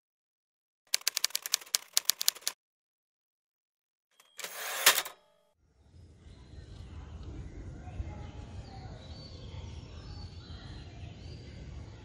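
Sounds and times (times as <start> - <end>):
typewriter carriage clack: 1.0 - 2.6, 4.2 - 5.2
typewriter carriage sliding: 4.2 - 5.2
typewriter margin bell ding: 4.2 - 5.3.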